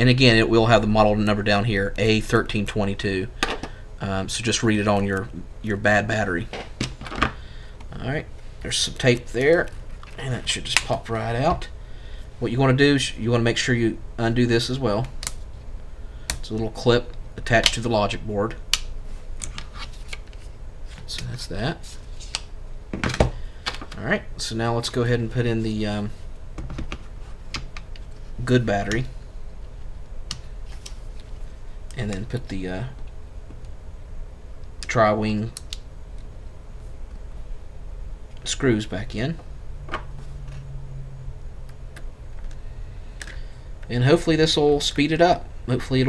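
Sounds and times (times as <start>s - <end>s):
low steady hum: 0.0s - 46.0s.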